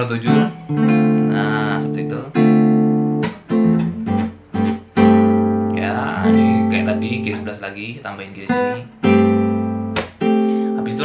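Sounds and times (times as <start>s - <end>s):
acoustic guitar chords ringing: 0.0s - 11.0s.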